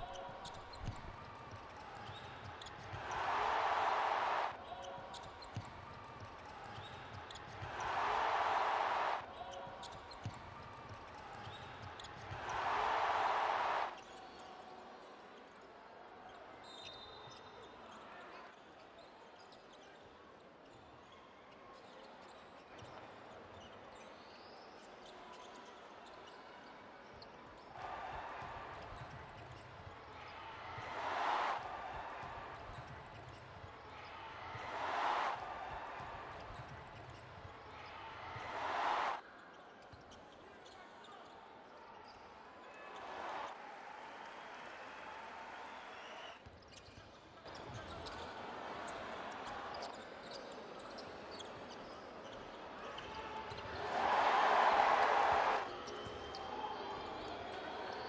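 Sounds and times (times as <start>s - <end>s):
crowd cheering: 0.0s - 15.0s, 27.6s - 39.2s, 42.0s - 46.4s, 47.5s - 50.4s, 51.8s - 58.0s.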